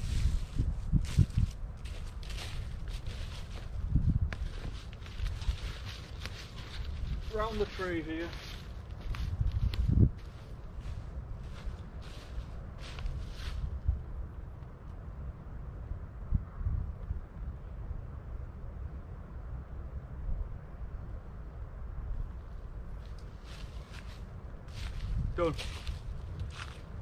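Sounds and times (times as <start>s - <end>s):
footsteps in dry leaves: 0.0s - 13.7s, 23.3s - 27.0s
wind rumble on microphone: 0.0s - 27.0s.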